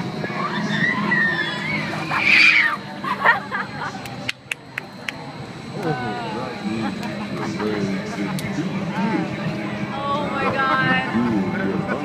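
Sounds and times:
crowd babble: 0:00.0 - 0:12.0
riders screaming: 0:00.2 - 0:02.9.

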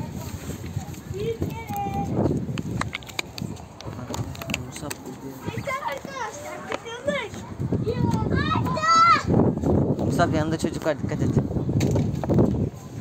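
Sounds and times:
children calling out: 0:05.5 - 0:09.4.

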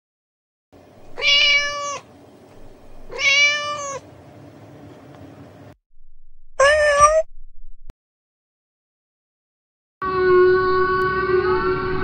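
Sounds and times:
cat meowing: 0:01.1 - 0:02.1, 0:03.1 - 0:04.0, 0:06.6 - 0:07.3.

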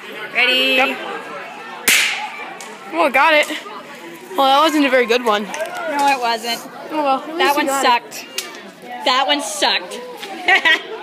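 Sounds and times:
party popper crack: 0:01.9 - 0:02.3.

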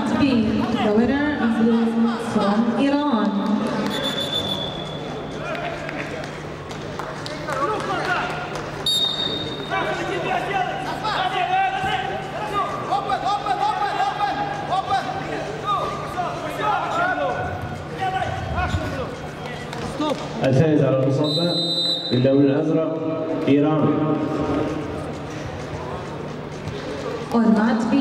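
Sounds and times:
referee's whistle blast: 0:03.9 - 0:05.1, 0:08.9 - 0:09.7, 0:21.2 - 0:22.2.

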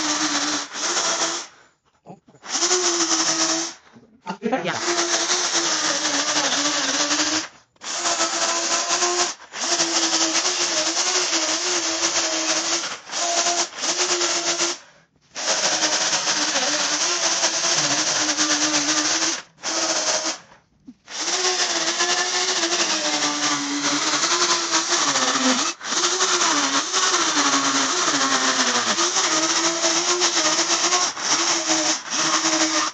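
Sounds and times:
electric chainsaw cutting wood: 0:00.0 - 0:01.6, 0:02.4 - 0:03.8, 0:04.7 - 0:32.9.

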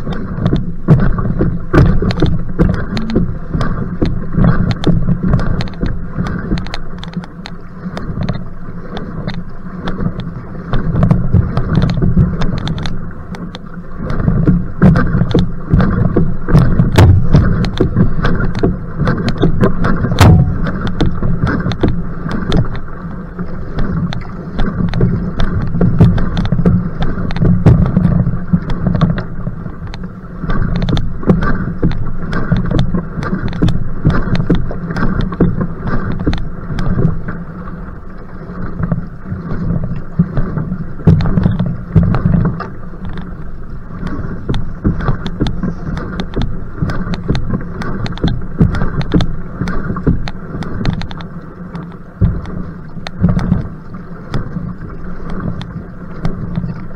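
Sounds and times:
wind buffeting microphone: 0:00.0 - 0:06.8, 0:14.1 - 0:30.0
paddle strokes: 0:00.0 - 0:56.9
water rushing and splashing: 0:00.0 - 0:56.9.

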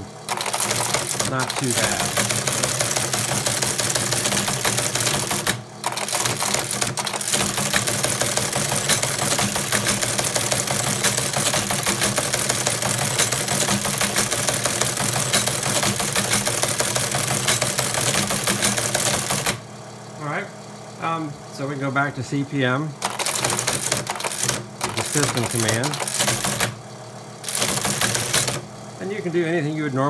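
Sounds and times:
teletype printer clattering: 0:00.0 - 0:19.6, 0:23.0 - 0:26.8, 0:27.4 - 0:28.7.

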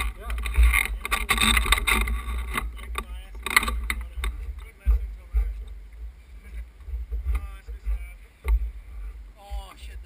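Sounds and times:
faint voices: 0:00.0 - 0:10.0
wind rumble on microphone: 0:00.0 - 0:10.0.

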